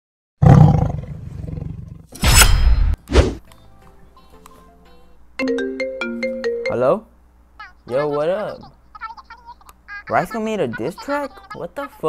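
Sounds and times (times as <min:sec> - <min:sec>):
big cat roaring: 0:00.4 - 0:02.1.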